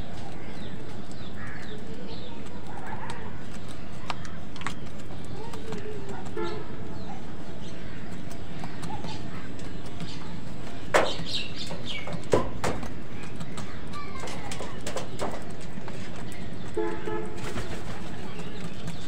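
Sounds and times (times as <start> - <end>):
small birds chirping: 0.0 - 19.0
steady background noise: 0.0 - 19.0
crows cawing: 1.2 - 2.0.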